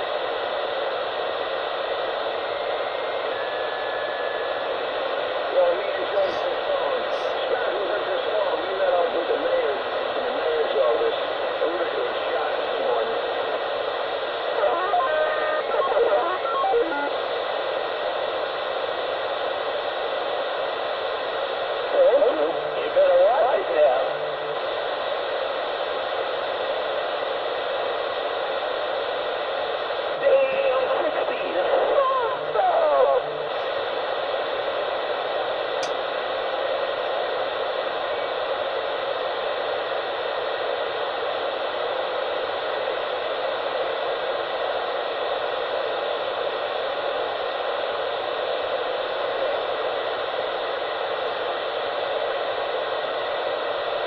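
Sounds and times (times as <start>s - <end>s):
static-like hiss: 0.0s - 54.0s
distorted far-off voice: 5.4s - 13.6s, 14.5s - 17.2s, 21.9s - 24.8s, 30.2s - 33.9s.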